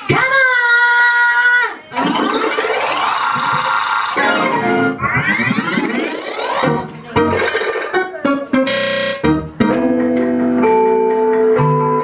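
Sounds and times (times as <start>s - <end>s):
loud dance music: 1.9s - 8.5s.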